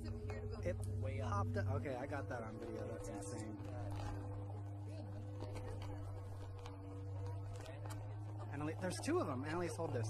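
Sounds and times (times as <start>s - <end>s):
faint murmuring voices: 0.0s - 10.0s
steady low hum: 0.0s - 10.0s.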